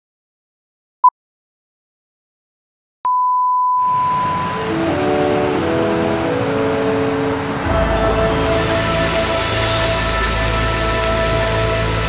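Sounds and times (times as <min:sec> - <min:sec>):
music with held notes: 0:04.4 - 0:12.0
loud even hiss: 0:07.2 - 0:12.0.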